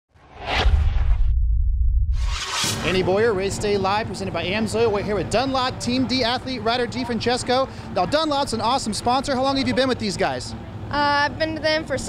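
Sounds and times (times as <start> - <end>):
whoosh: 0.1 - 3.4
deep low rumble: 0.2 - 3.5.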